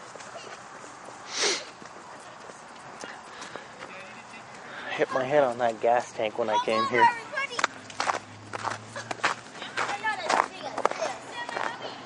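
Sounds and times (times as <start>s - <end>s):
footsteps on snow: 7.6s - 12.0s.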